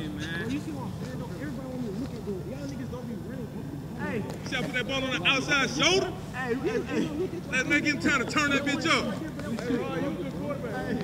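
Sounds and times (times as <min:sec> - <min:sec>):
people talking over each other: 0:00.0 - 0:11.0.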